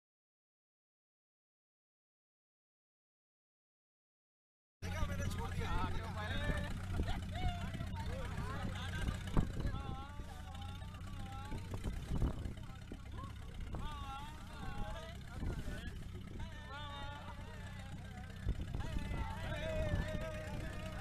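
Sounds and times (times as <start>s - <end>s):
indistinct voices: 4.8s - 21.0s
low engine hum: 4.8s - 21.0s.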